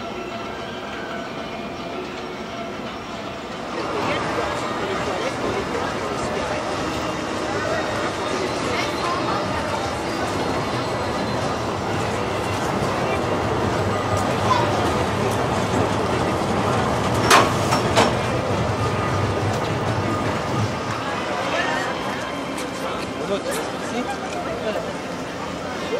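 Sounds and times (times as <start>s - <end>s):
people's voices: 0.0s - 25.9s
roller coaster rumbling on track: 0.0s - 25.9s.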